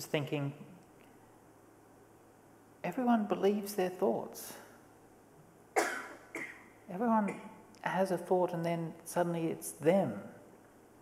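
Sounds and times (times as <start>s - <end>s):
person coughing: 5.8s - 6.7s.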